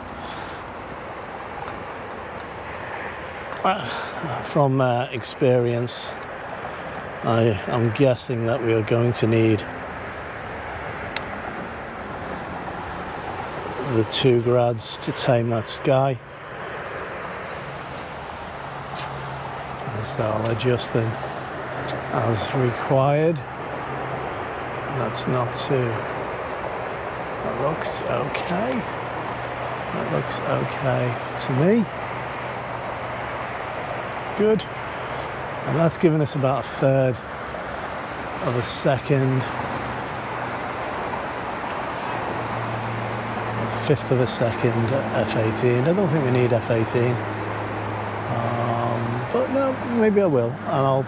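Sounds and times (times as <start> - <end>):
distant vehicle engines: 0.0 - 51.0
road traffic hiss: 0.0 - 51.0
light click: 11.1 - 11.3.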